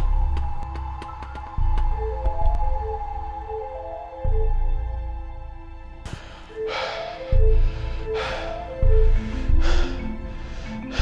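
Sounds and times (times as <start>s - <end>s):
deep bass pulse: 0.0s - 6.1s, 7.4s - 10.5s
eerie horror film score: 0.0s - 11.0s.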